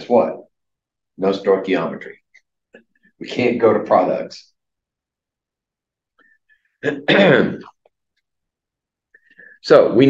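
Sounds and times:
man clearing his throat: 6.8 - 7.7.

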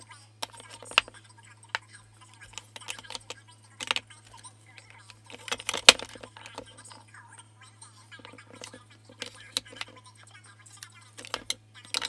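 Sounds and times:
low steady hum: 0.0 - 12.0
plastic compacts clacking: 0.4 - 7.0, 8.2 - 10.0, 10.8 - 12.0.

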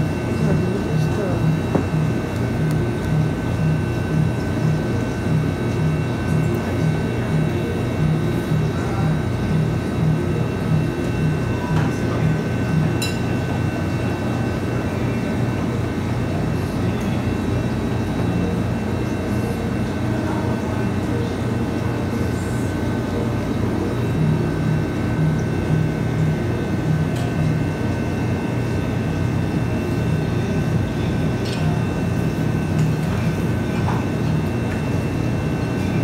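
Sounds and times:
low machine hum: 0.0 - 36.0.

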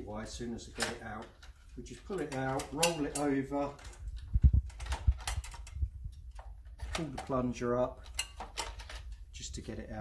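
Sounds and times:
stapler metal clicks and knocks: 2.2 - 7.4, 8.0 - 9.2.

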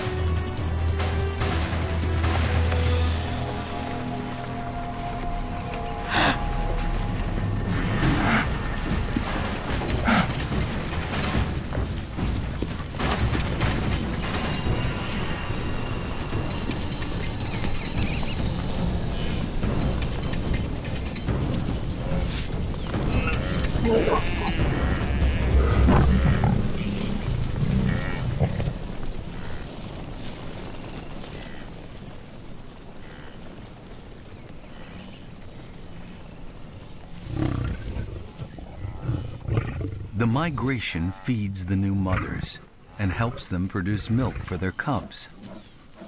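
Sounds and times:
hooves drumming on ground: 0.0 - 46.0
lions growling: 7.7 - 11.9, 23.1 - 29.5, 37.2 - 40.2, 45.3 - 46.0.

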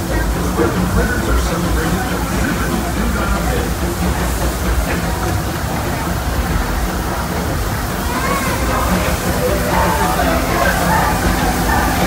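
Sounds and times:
train rumbling along track: 0.0 - 12.0.

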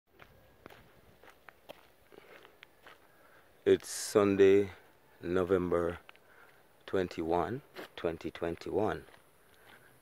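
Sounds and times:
soft footsteps: 0.1 - 10.0.

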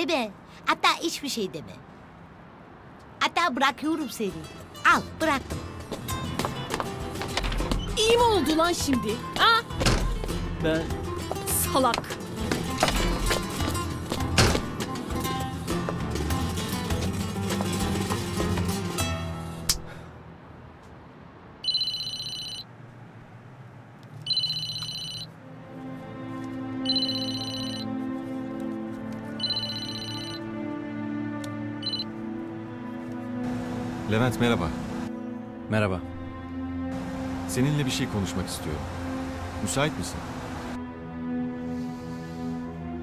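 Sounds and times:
soft background music: 3.5 - 19.7, 24.3 - 43.0
mobile phone ringtone: 21.6 - 22.7, 24.2 - 25.4, 26.8 - 27.9, 29.3 - 30.5, 31.8 - 32.2.

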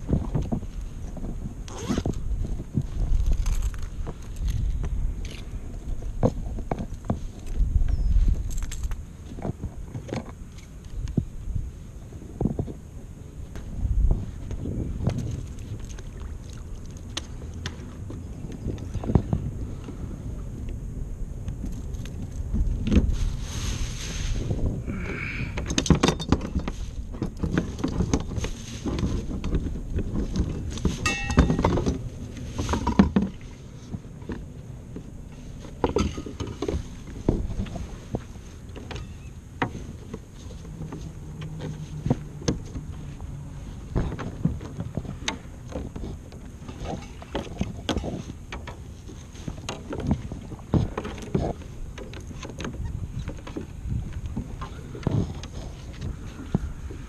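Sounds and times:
water against kayak hull: 0.0 - 57.0
wind on microphone: 0.0 - 57.0.

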